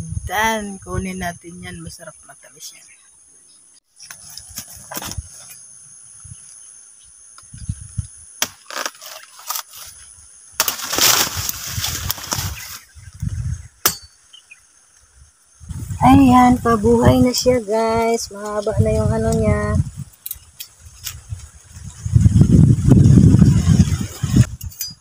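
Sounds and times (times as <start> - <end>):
leaves rustling and crackling: 8.5 - 13.5.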